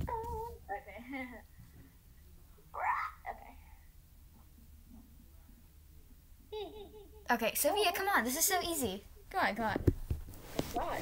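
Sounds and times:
girl speaking: 7.3s - 9.8s.

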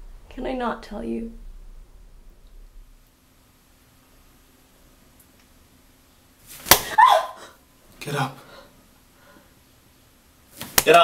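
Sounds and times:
sharp hit: 1.2s - 3.1s
short falling cry: 6.8s - 7.6s.

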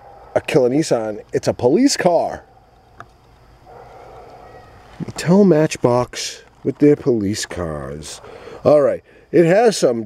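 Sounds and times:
faint plastic packaging rustling: 2.6s - 7.6s.

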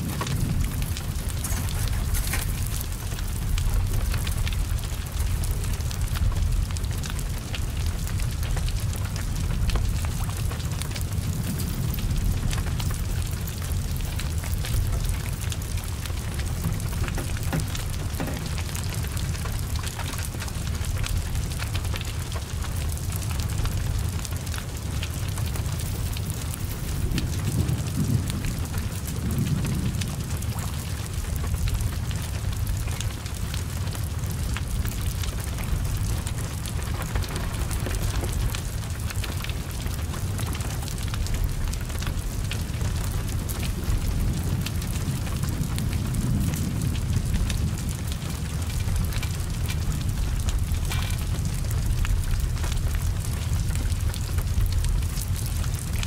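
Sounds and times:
fire crackling: 0.0s - 56.0s
heavy rain hissing: 0.0s - 56.0s
low rumble of flames: 0.0s - 56.0s.

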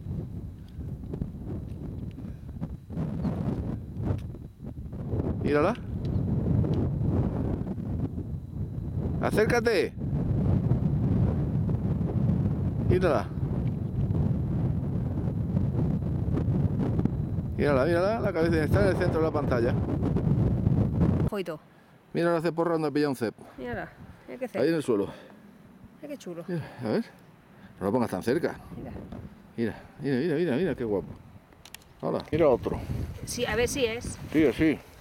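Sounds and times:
wind buffeting microphone: 0.0s - 21.4s, 23.6s - 24.5s, 27.4s - 35.0s.

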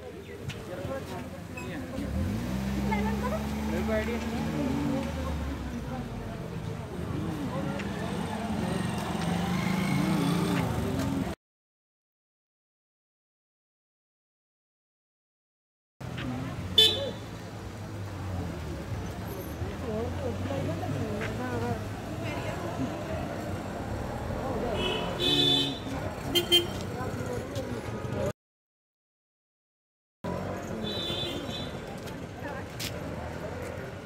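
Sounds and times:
people talking: 0.0s - 11.4s, 16.1s - 28.3s, 30.4s - 34.0s
street noise: 0.0s - 11.4s, 16.0s - 28.4s, 30.2s - 34.0s
vehicle engine humming: 1.0s - 11.4s.

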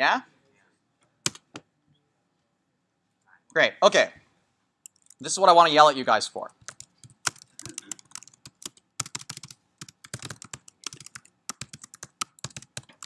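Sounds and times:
typing on computer keyboard: 1.3s - 1.5s, 4.8s - 5.2s, 6.5s - 13.0s.

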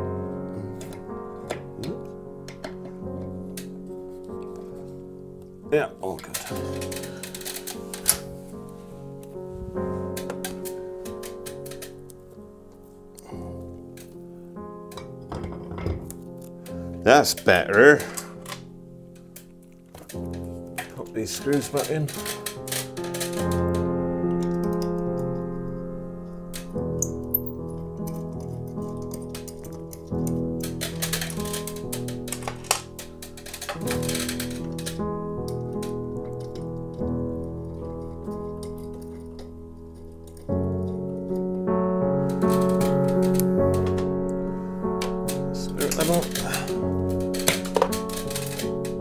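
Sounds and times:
keyboard music with held chords: 0.0s - 49.0s
screwdriver clicks and rattles: 6.3s - 8.2s, 19.2s - 23.8s, 26.6s - 36.9s, 37.6s - 41.0s, 42.3s - 44.1s, 45.0s - 49.0s.

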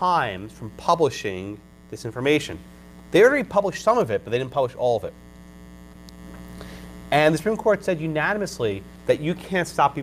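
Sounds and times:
electrical hum with held tones: 0.0s - 10.0s.

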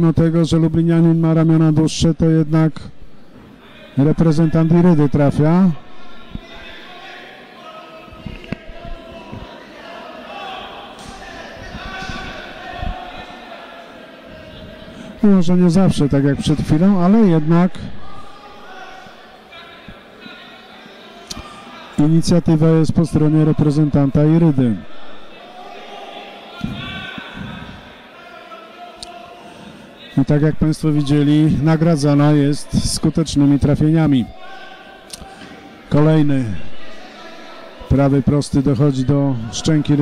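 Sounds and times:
voices calling out: 3.5s - 40.0s
spectators shouting: 5.8s - 40.0s.

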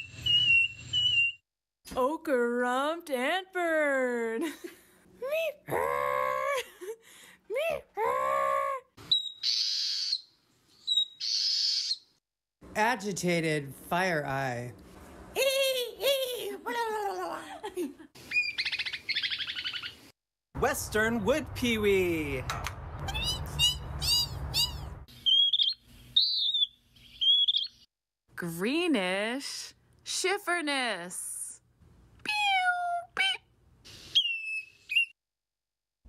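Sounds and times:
bird song whistle and buzzy note: 0.0s - 1.4s, 9.0s - 12.2s, 23.2s - 27.9s, 33.9s - 35.2s.

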